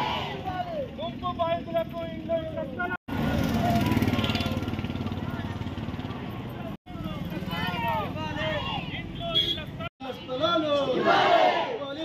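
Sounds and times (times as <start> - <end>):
crowd shouting together: 0.0 - 0.8, 10.8 - 12.0
vehicle engine running: 1.1 - 8.4.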